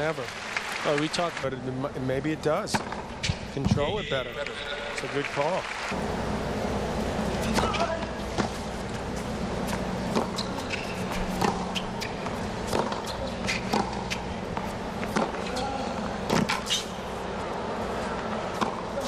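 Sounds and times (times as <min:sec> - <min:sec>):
stadium background hum: 0:00.0 - 0:19.0
tennis ball struck by racquets: 0:02.7 - 0:03.6, 0:09.6 - 0:17.0, 0:18.5 - 0:19.0
ball bouncing on hard court: 0:09.7 - 0:15.6.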